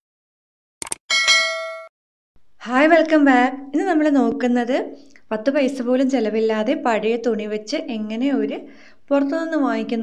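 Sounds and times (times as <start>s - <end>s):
bright bell-like ding: 1.1s - 1.9s.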